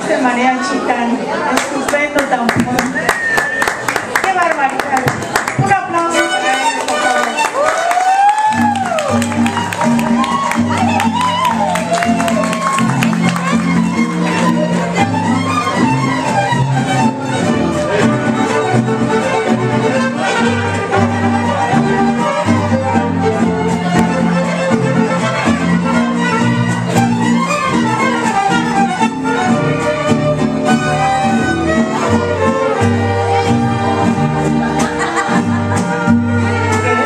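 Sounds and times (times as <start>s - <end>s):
strummed guitars: 5.0s - 37.0s
bowed violin melody: 5.6s - 37.0s.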